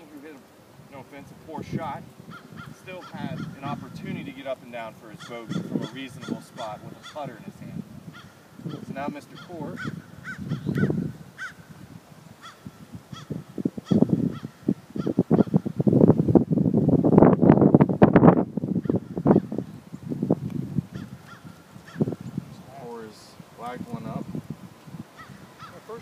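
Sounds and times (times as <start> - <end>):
flock of birds calling: 2.2 - 4.3, 5.0 - 11.7, 12.4 - 15.7, 20.9 - 24.2, 25.0 - 26.0.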